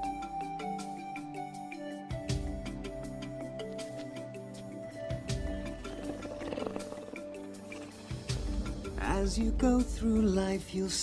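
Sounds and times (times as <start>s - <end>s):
lion rumbling: 5.2s - 9.2s.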